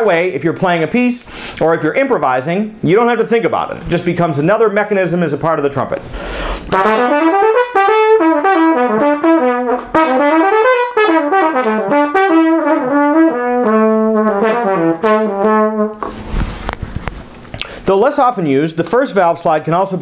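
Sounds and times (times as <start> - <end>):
trumpet playing low scales: 6.7 - 16.0.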